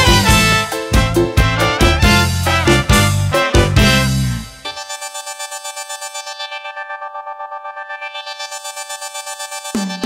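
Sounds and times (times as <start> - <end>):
pulsing synthesizer chord: 1.5 - 10.0.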